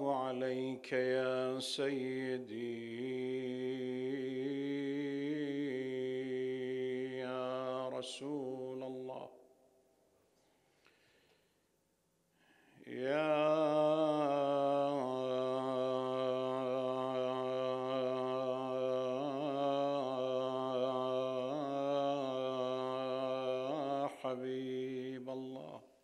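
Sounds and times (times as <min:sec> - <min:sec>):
man chanting: 0:00.0 - 0:09.4, 0:12.8 - 0:26.0.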